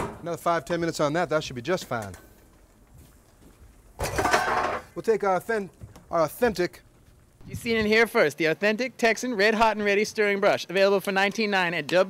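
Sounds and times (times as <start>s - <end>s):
metal pot scraping and clanking: 4.0s - 5.0s.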